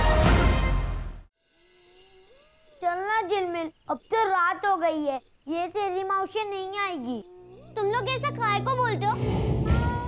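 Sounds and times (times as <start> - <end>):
music: 0.0 - 1.3, 8.1 - 10.0
crickets chirping: 1.4 - 9.2
child's voice: 2.8 - 10.0.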